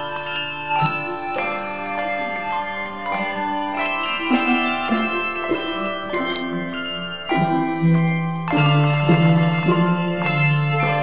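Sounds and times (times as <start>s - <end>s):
handbell choir playing: 0.0s - 11.0s.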